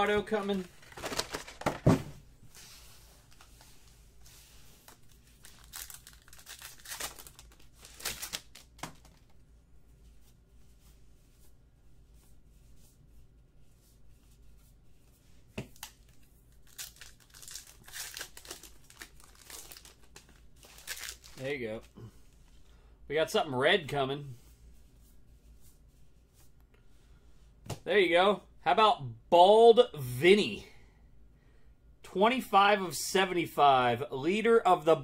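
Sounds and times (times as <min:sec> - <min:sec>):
card pack wrappers crinkling: 0:00.1 - 0:01.9, 0:04.8 - 0:09.3, 0:15.7 - 0:21.5.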